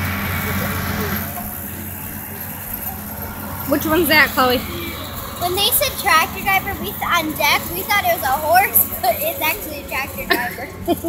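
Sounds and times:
faint voices: 0.0 - 11.0
tractor engine running: 0.0 - 11.0.

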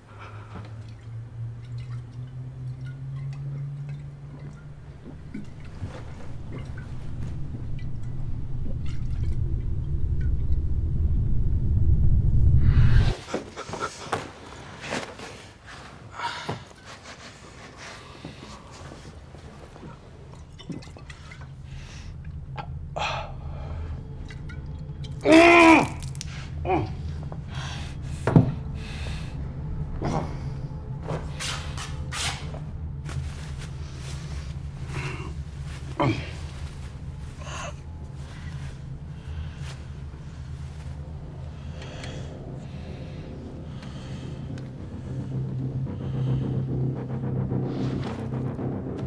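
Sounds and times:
low rumbling suspense drone: 0.0 - 15.5, 17.8 - 49.0
rustling and scuffling: 13.1 - 20.2, 30.1 - 41.2
man crying out in pain: 25.2 - 27.0.

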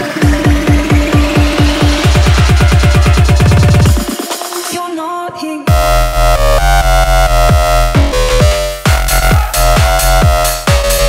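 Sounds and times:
hard kick drums: 0.0 - 11.0
fast drum roll: 0.1 - 4.8
rising synth sweep: 5.7 - 11.0.

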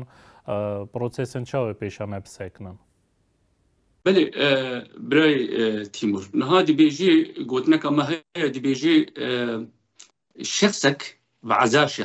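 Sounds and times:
man speaking: 0.0 - 2.8, 4.1 - 9.7, 10.4 - 12.0.

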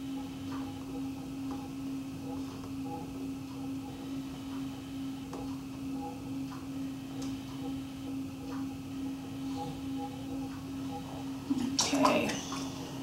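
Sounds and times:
potter's wheel motor hum: 0.0 - 13.0.

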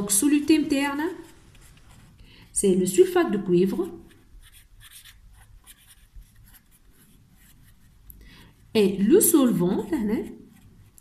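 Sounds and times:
felt-tip pen writing on paper: 3.8 - 8.0.

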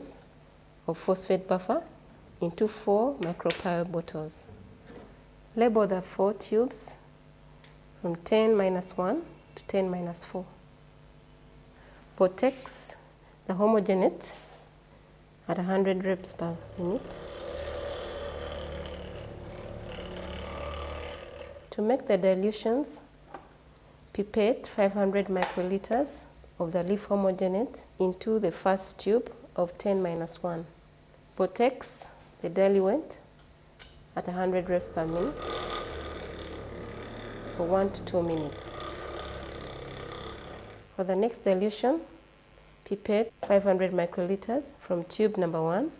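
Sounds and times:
vortex mixer running: 15.6 - 21.8, 34.2 - 41.0.

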